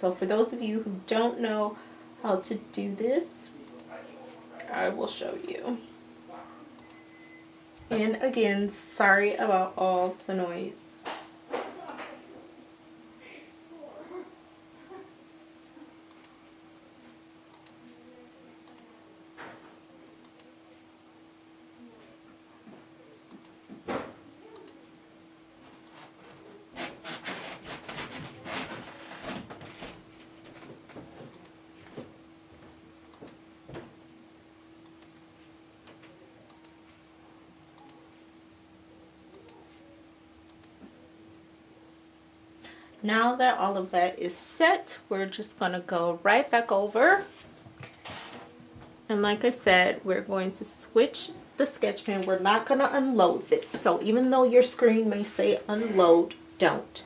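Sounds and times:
faint steady hum: 0.0 - 57.0
household background noise: 0.0 - 57.0.

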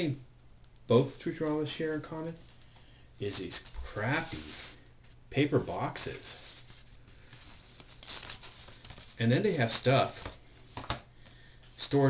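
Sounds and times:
cardboard packaging rustling: 3.2 - 11.0.

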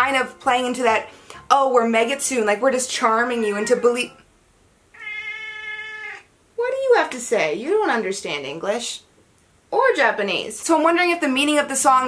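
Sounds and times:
cat meowing: 4.9 - 6.3.

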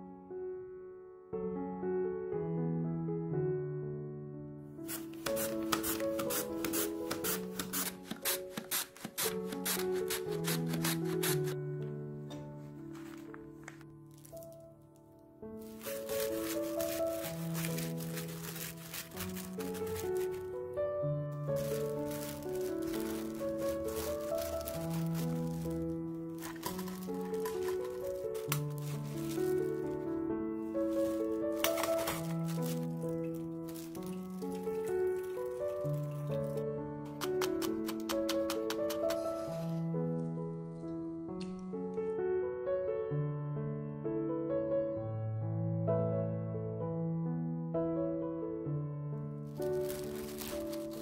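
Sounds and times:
gentle background music: 0.0 - 51.0
squishing and glove crinkling: 4.8 - 11.6, 12.6 - 14.9, 15.5 - 20.7, 21.4 - 39.9, 49.5 - 51.0
radish rasping on slicer blade: 4.9 - 11.6.

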